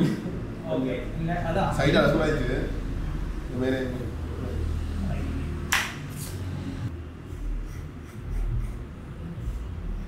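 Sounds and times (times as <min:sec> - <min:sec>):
sharp snap: 0:05.7 - 0:06.4.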